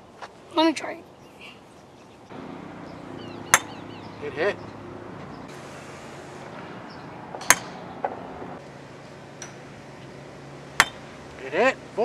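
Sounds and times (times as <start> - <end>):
faint steady hum: 0.0 - 12.0
golf clubs striking balls: 2.3 - 12.0.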